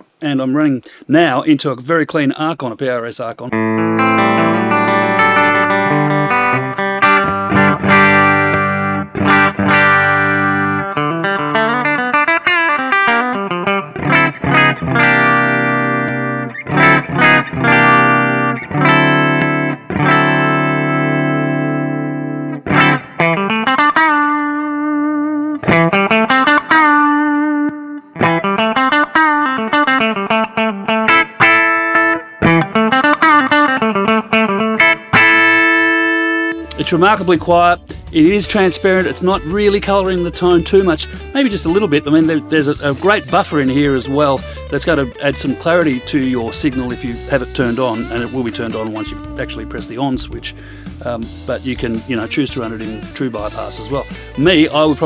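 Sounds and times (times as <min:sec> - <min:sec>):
clean electric guitar: 0:03.5 - 0:55.0.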